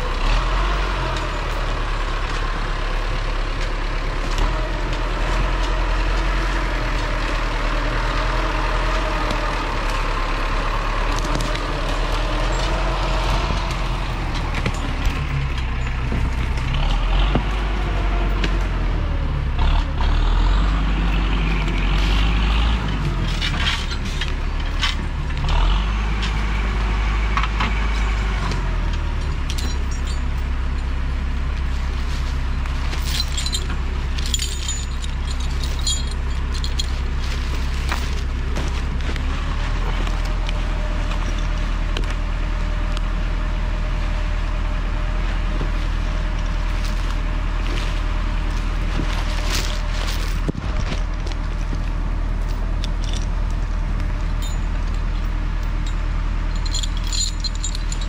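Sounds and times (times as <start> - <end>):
diesel engine running and revving: 0.0 - 58.0
metallic clinks and knocks: 11.3 - 16.8, 29.0 - 31.0, 32.9 - 38.3, 52.4 - 53.6, 54.2 - 58.0.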